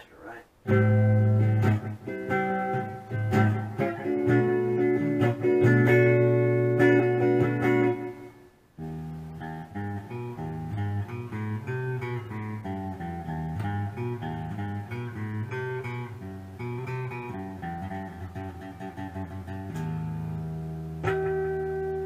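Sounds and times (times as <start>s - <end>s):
electric guitar through amp: 0.7s - 22.0s.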